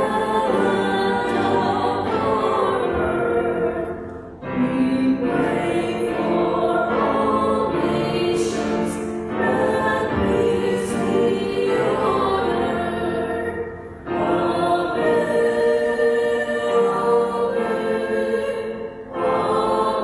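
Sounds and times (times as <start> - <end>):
voices singing a hymn: 0.0 - 20.0.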